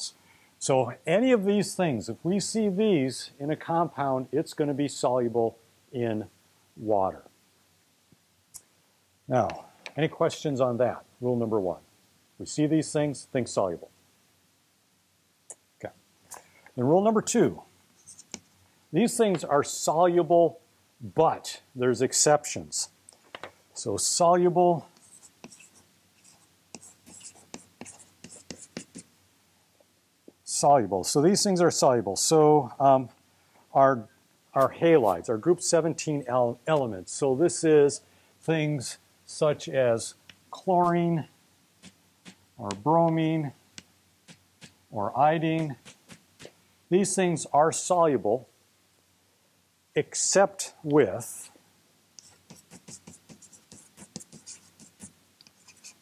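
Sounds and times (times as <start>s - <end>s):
chalk tapping and scraping on blackboard: 18.0s - 18.5s, 24.8s - 29.1s, 41.8s - 43.2s, 43.8s - 44.8s, 45.6s - 46.6s, 52.2s - 56.0s.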